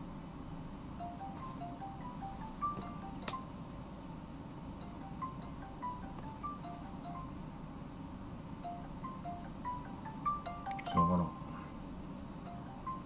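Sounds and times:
phone ringback chiming melody: 0:01.0 - 0:03.6, 0:04.8 - 0:07.5, 0:08.6 - 0:11.5, 0:12.4 - 0:13.0.

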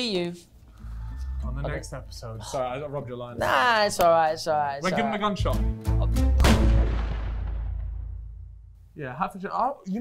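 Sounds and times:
gunshot bang: 0:06.4 - 0:08.7
deep boom: 0:06.4 - 0:08.8.

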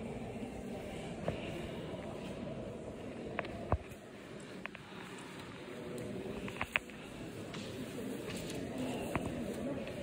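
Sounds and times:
murmur of visitors: 0:00.0 - 0:10.0.

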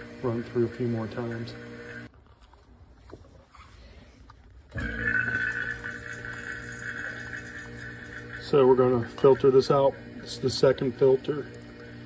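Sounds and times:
electric vacuum pump humming: 0:00.0 - 0:02.1, 0:04.7 - 0:12.0.

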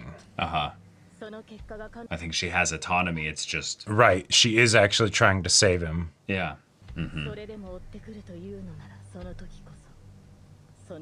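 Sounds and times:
hosts talking: 0:00.0 - 0:00.7, 0:01.3 - 0:09.4
person murmuring: 0:00.0 - 0:00.8, 0:07.0 - 0:07.6
character speaking dialogue: 0:06.3 - 0:07.4.

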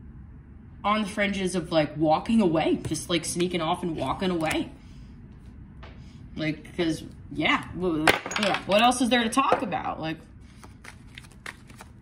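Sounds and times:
cards being shuffled: 0:10.5 - 0:12.0.

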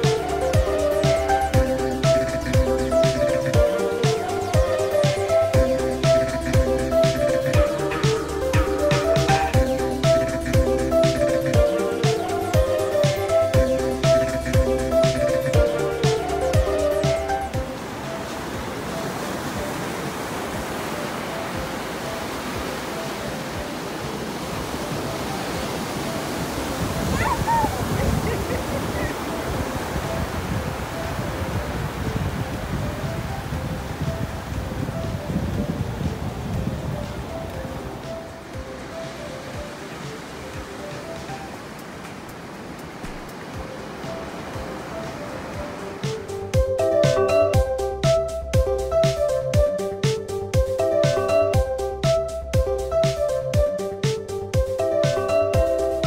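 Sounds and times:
soft background music: 0:00.0 - 0:56.0
surf breaking on beach: 0:15.0 - 0:47.4.

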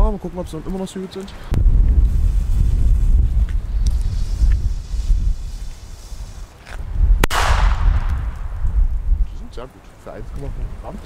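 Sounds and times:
firecracker bang: 0:07.2 - 0:09.0.

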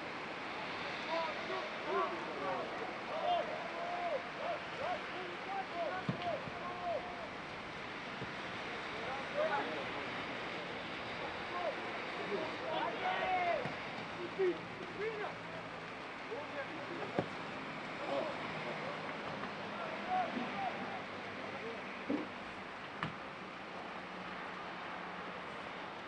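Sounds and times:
footballers shouting: 0:00.5 - 0:22.0.

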